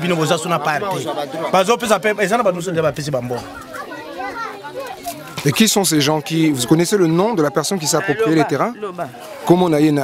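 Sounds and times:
children talking and calling: 0.0 - 10.0
man's voice: 5.5 - 10.0.

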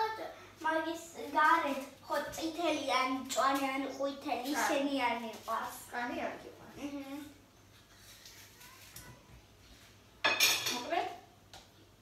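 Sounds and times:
dishes clattering: 10.2 - 10.9.

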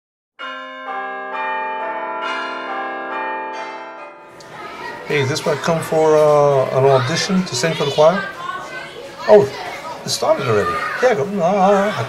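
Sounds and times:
descending bell chimes: 0.4 - 5.2.

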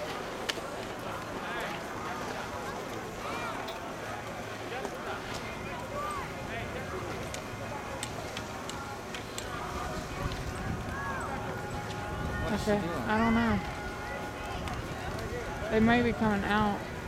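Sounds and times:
crowd chatter: 0.0 - 17.0.

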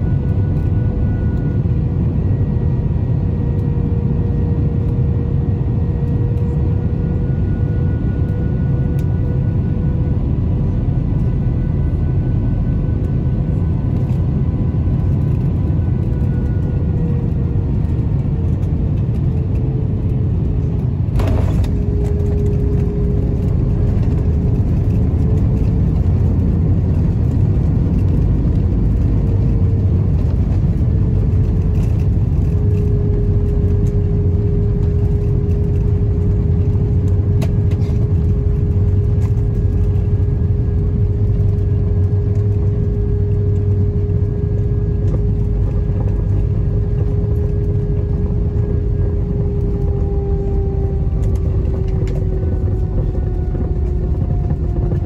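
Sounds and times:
deep rumble of wheels and engines: 0.0 - 55.0
jet engine whine: 0.0 - 55.0.

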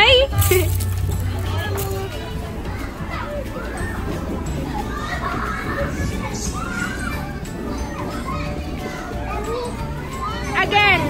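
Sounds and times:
background music: 0.0 - 11.0
children shouting: 1.2 - 11.0.

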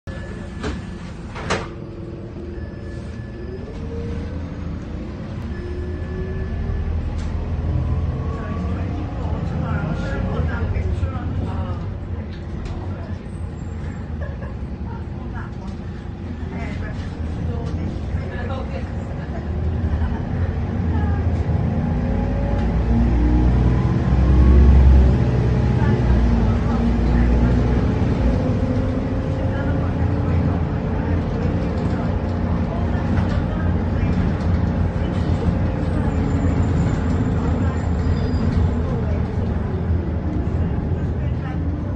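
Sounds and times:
bus engine humming: 0.0 - 41.9.

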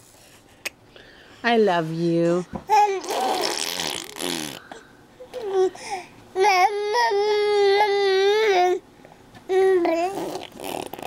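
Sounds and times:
baby blowing a raspberry: 2.8 - 4.7, 9.9 - 11.0.

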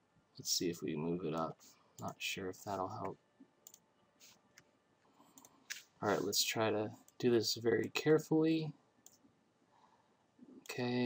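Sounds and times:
faint computer mouse clicks: 3.0 - 4.7.

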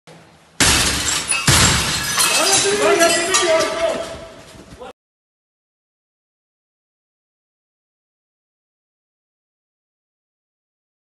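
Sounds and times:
loud breaking crashes: 0.6 - 3.9.

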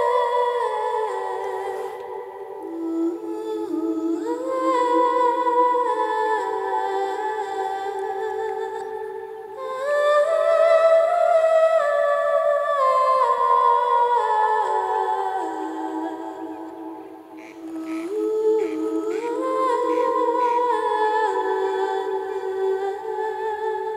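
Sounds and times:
person humming a slow melody: 0.0 - 23.9.

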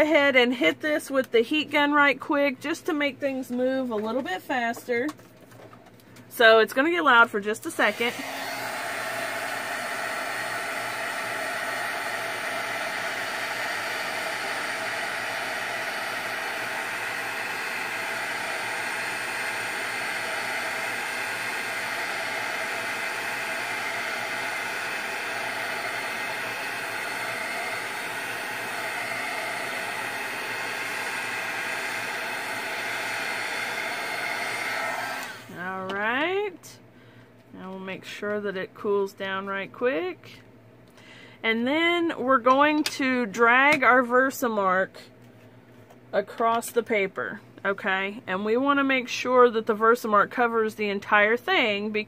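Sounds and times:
heat gun blowing: 7.7 - 35.7.

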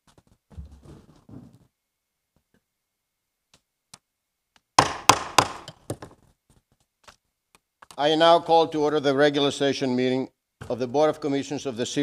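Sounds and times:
wooden gavel striking: 4.8 - 6.1.

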